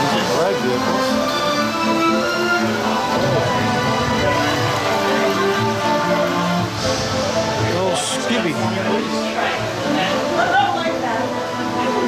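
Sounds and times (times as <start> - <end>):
orchestral music over speakers: 0.0 - 12.0.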